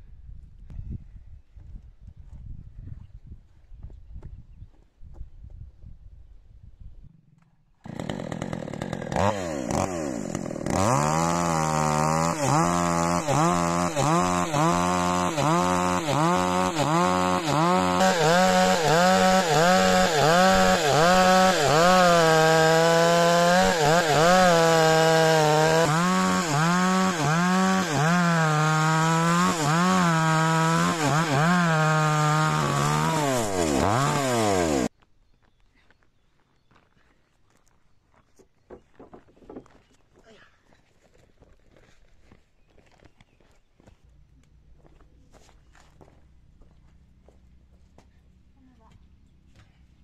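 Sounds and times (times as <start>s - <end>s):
chainsaw cutting wood: 7.8s - 34.9s.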